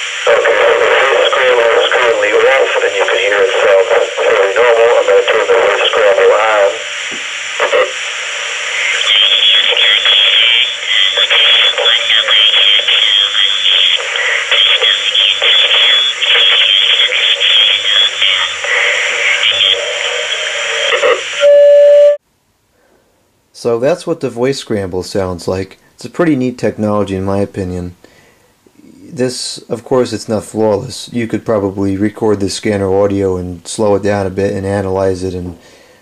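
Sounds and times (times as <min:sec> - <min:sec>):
loud steady tone: 0:00.0 - 0:22.2
garbled scrambled speech: 0:00.3 - 0:06.8, 0:08.8 - 0:21.2.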